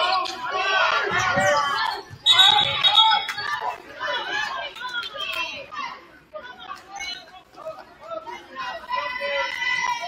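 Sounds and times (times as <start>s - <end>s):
crowd voices calling and chattering: 0.0s - 10.0s
referee's whistle: 1.8s - 3.5s.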